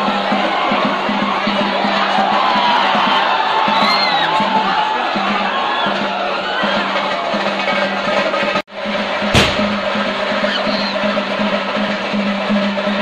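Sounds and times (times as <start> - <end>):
fast dense drumming: 0.0 - 13.0.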